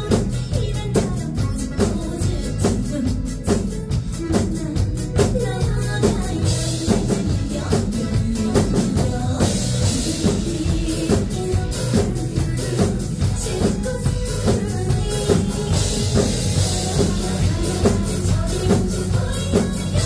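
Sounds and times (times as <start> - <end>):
drum kits playing: 0.0 - 20.0
pop music backing track: 0.0 - 20.0.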